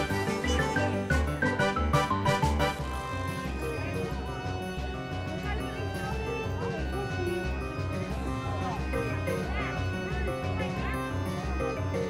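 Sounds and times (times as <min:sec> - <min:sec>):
background music with steady beat: 0:00.0 - 0:12.0.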